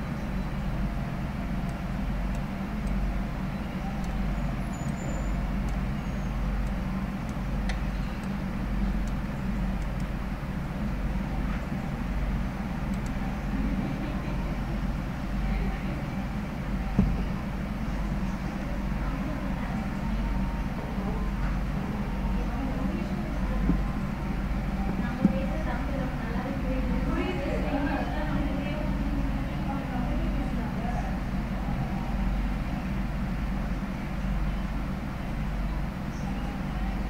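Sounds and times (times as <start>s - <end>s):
low hum: 0.0s - 37.0s
open microphone noise: 0.0s - 37.0s.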